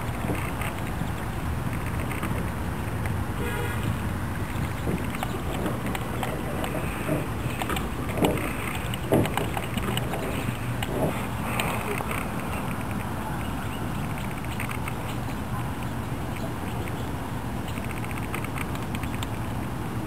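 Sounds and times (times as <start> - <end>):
sharp knocks: 4.5 - 11.3.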